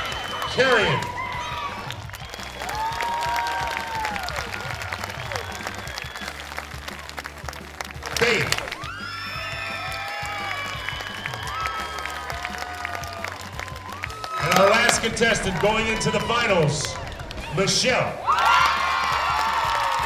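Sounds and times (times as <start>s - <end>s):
loud shout: 0.0s - 5.8s, 8.2s - 20.0s
audience applause and cheering: 0.0s - 20.0s
music playing: 0.0s - 20.0s.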